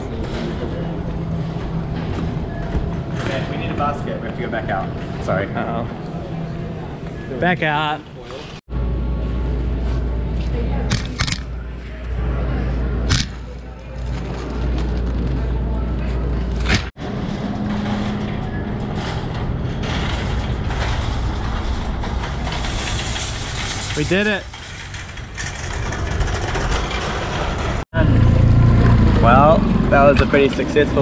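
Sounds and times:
shopping cart rolling: 12.7 - 27.8.

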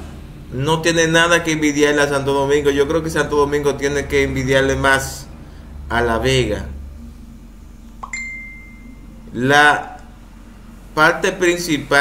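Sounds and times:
high clear ding: 8.0 - 9.1.

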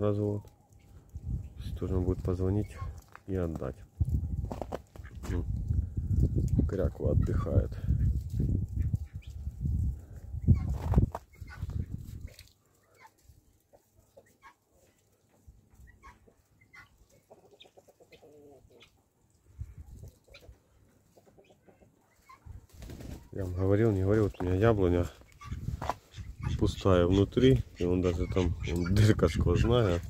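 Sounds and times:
low rumble on microphone: 1.0 - 3.0, 3.7 - 12.3
fowl chirping: 10.5 - 15.0, 15.7 - 19.1, 20.2 - 22.6, 23.9 - 30.0
fowl clucking: 15.8 - 19.0, 20.3 - 22.5.

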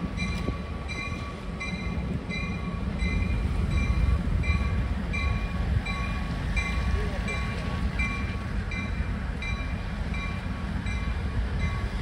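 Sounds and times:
railroad bell ringing: 0.0 - 12.0
train rumble: 0.0 - 12.0.

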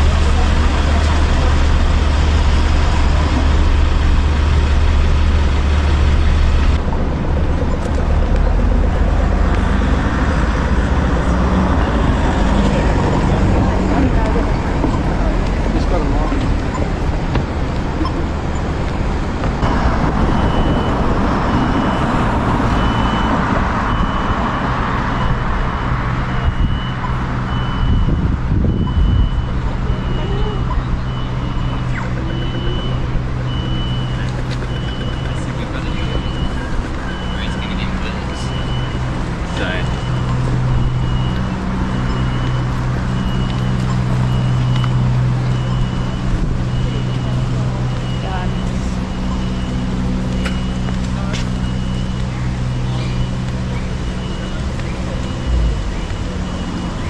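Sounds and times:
low engine hum: 0.0 - 57.0
vehicles passing: 0.0 - 57.0.

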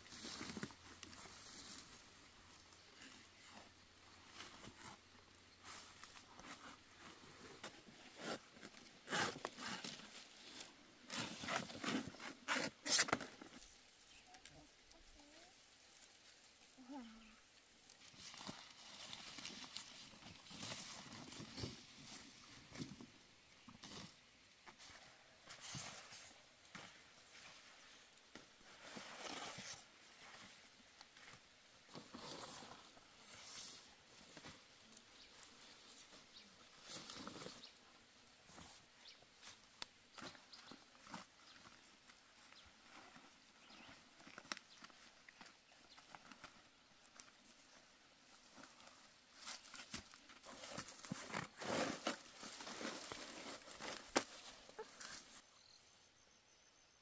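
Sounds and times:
leaves rustling and crackling: 0.0 - 24.2, 24.8 - 55.4.

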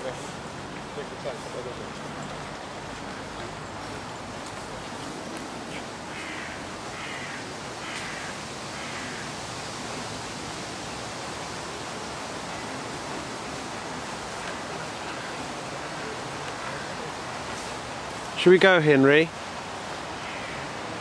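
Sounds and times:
rushing outdoor noise in woods: 0.0 - 21.0
bird harsh calls: 5.6 - 9.3.

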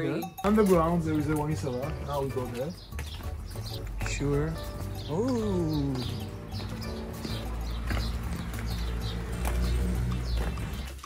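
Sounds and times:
footsteps on stone steps: 0.4 - 11.0.

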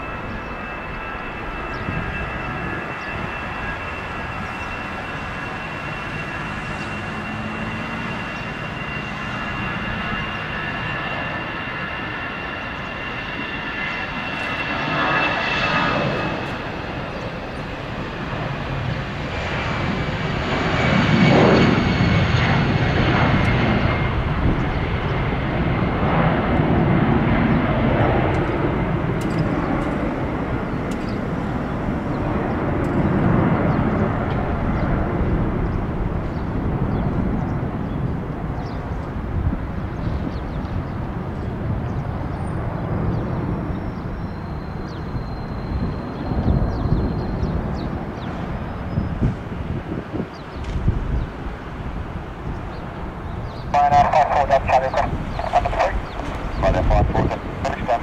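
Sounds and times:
jet engines at takeoff: 0.0 - 58.0.

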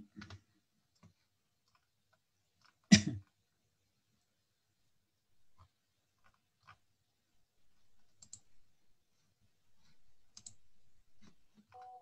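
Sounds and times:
computer mouse clicks: 7.8 - 8.7, 9.8 - 11.9.

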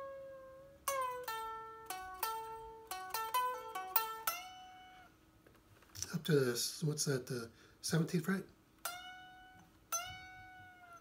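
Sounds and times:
unamplified electric guitar lead: 0.0 - 5.1.

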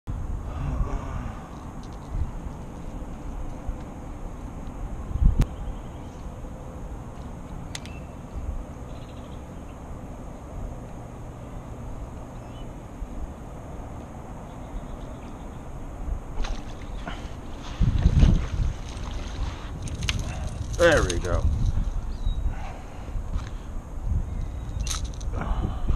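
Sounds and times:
wind rumbling on microphone: 0.1 - 9.4, 15.7 - 25.9.

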